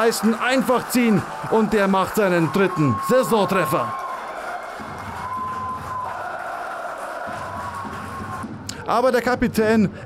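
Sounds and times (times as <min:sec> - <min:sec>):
stadium crowd cheering: 0:00.0 - 0:09.2.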